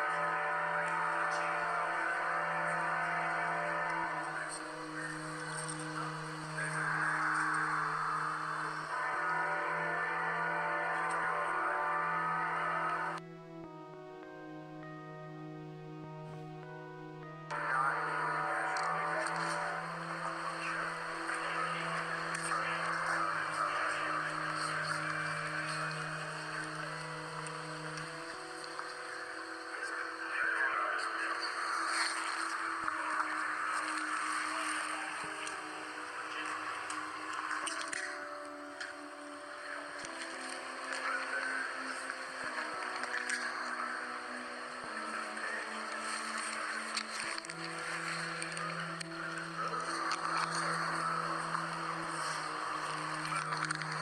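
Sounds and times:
slow music with held chords: 0.0s - 54.0s.

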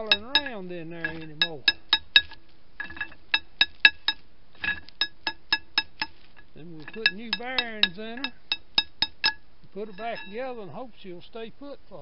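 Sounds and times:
hammer tapping on steel shaft: 0.0s - 10.4s.

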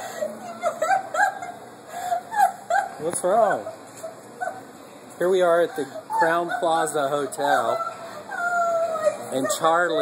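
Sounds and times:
woman whimpering and yelping: 0.0s - 3.0s, 4.0s - 4.7s, 5.8s - 10.0s.

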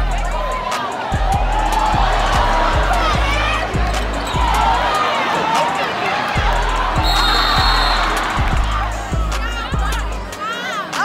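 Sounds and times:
bass-heavy hip-hop music: 0.0s - 5.0s, 6.4s - 11.0s
crowd voices: 0.0s - 11.0s
referee's whistle: 7.0s - 8.3s.

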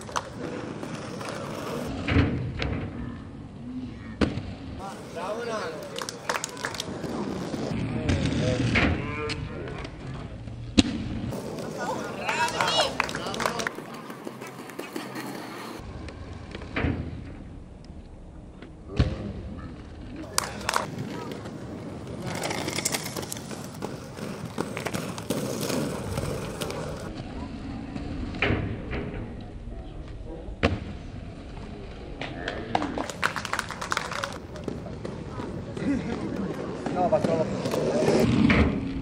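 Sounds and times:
skate wheels rolling on asphalt: 0.0s - 18.8s, 19.6s - 30.2s, 31.0s - 39.0s.

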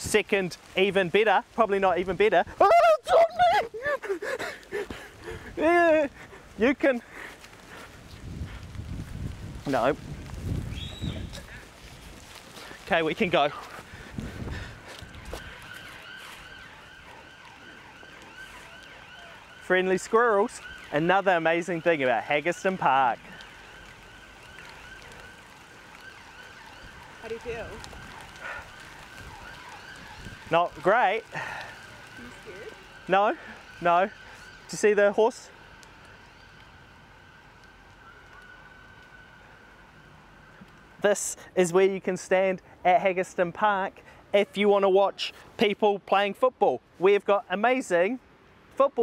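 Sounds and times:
emergency vehicle siren: 0.5s - 41.6s.

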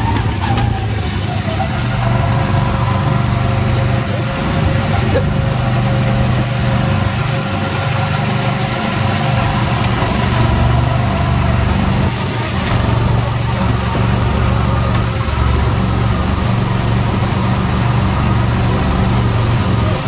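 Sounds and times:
go-kart engines droning: 0.0s - 20.0s.

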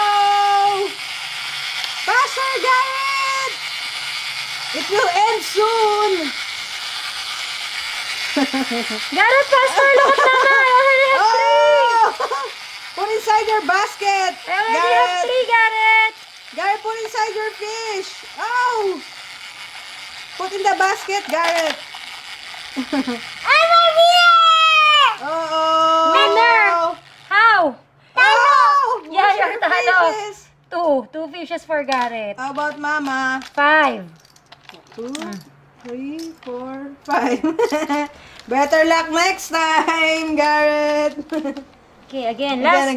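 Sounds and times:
toy motor and gears whirring: 0.0s - 42.9s.

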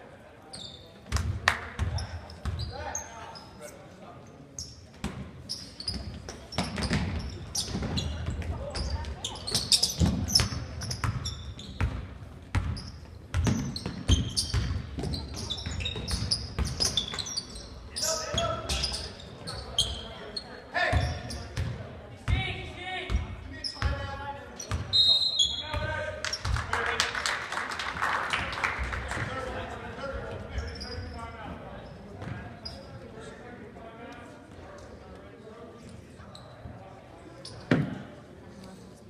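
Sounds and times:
sneakers squeaking: 0.4s - 3.8s, 4.5s - 22.4s, 23.1s - 26.6s, 30.4s - 33.2s, 36.2s - 38.1s.

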